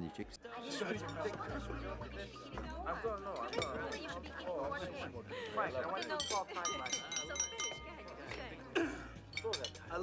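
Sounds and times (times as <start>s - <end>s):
crowd chatter: 0.0s - 10.0s
glass clinking when tapped: 6.1s - 8.4s.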